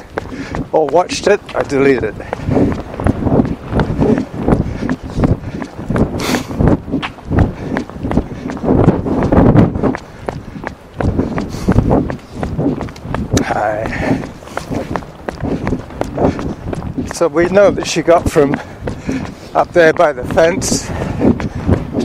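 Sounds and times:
running footsteps thudding: 0:00.0 - 0:22.0
wind buffeting microphone: 0:00.0 - 0:22.0.

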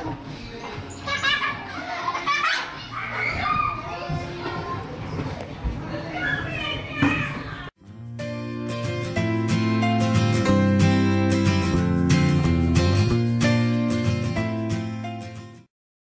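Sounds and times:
children calling and squealing: 0:00.3 - 0:07.8
strummed acoustic guitar music: 0:07.8 - 0:15.6.

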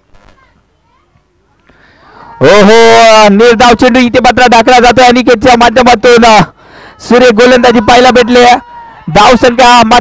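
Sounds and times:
distant shouts and chatter: 0:00.4 - 0:10.0.

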